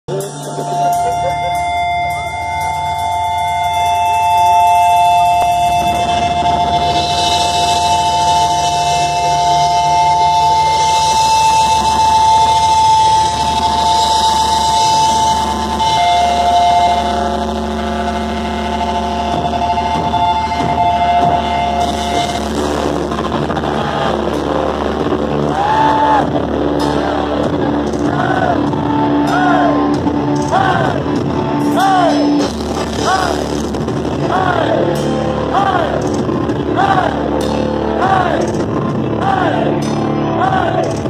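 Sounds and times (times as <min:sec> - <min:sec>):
distorted electric guitar chords: 0:00.0 - 0:41.0
cymbals: 0:00.1 - 0:41.0
low rumble: 0:04.5 - 0:41.0.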